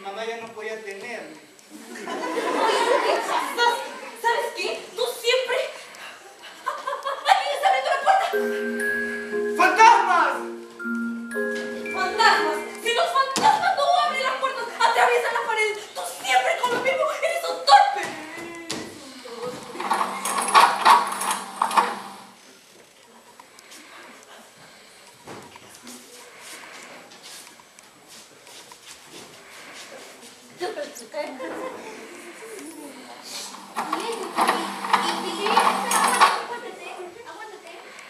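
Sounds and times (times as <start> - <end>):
young performers' voices: 8.3 - 16.2.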